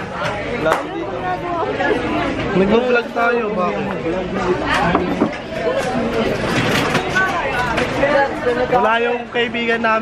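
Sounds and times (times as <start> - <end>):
young people chattering: 0.0 - 10.0.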